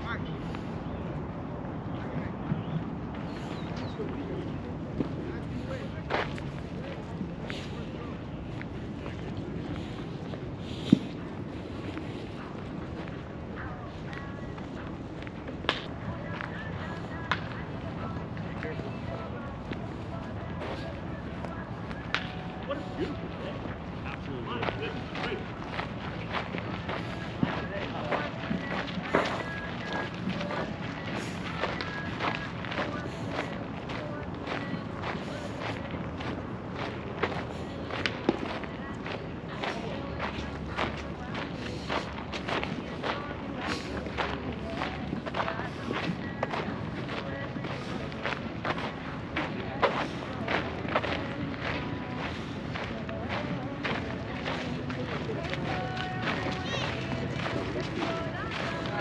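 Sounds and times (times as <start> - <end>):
people talking: 0.0 - 59.0
footsteps crunching on gravel: 2.0 - 59.0.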